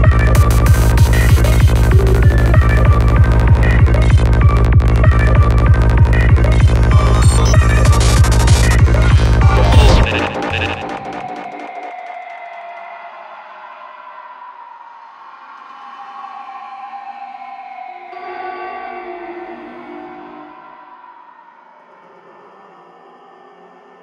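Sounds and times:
sustained synth tones: 0.0 - 12.1.

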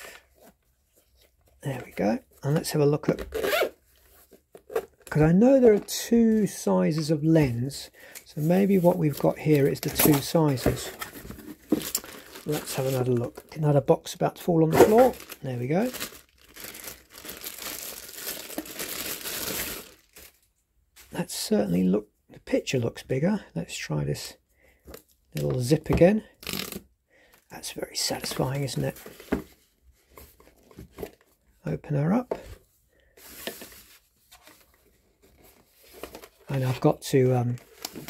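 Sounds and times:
plastic film crinkling: 11.2 - 13.6, 14.7 - 20.5.

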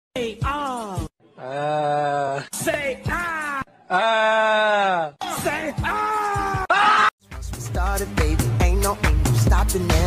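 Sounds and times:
person making wordless calls: 1.4 - 2.4.

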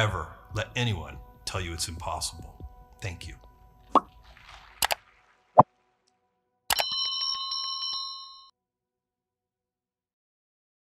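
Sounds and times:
sharp electronic clicks: 6.7 - 7.0
bell-like electronic chime: 6.7 - 8.5.

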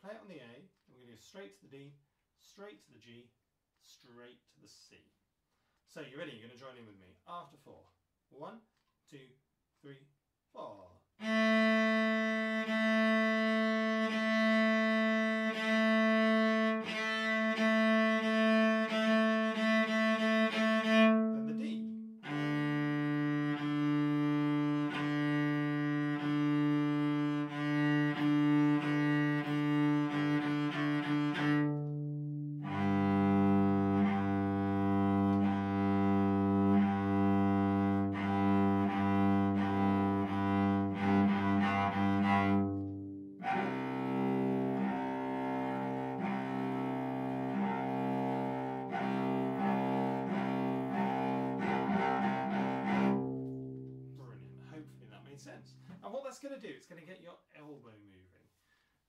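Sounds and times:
solo cello bowed notes: 11.2 - 56.0.

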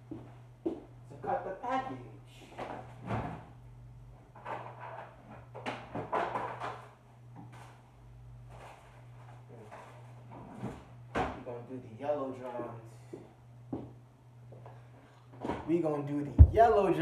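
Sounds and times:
low hum: 16.4 - 17.0.

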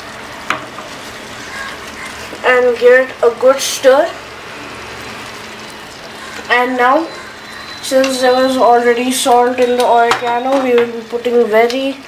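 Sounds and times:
tomato sauce sizzling in a pan: 0.0 - 12.0.

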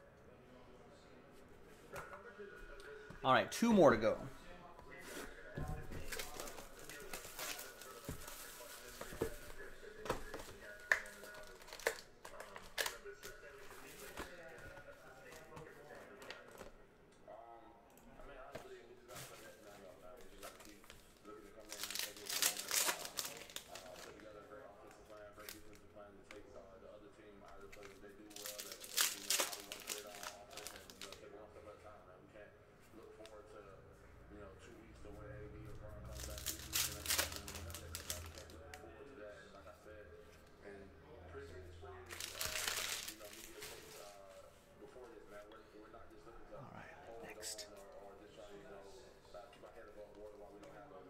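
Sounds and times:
wrapper tearing and crinkling: 21.6 - 24.1, 28.3 - 31.2, 36.1 - 38.6, 42.1 - 44.0.

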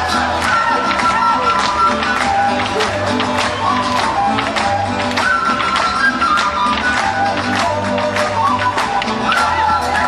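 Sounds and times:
folk band music: 0.0 - 10.0.

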